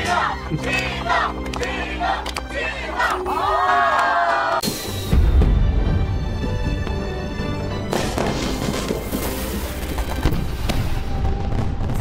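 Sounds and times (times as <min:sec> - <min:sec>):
fireworks bursting and crackling: 0:07.9 - 0:12.0.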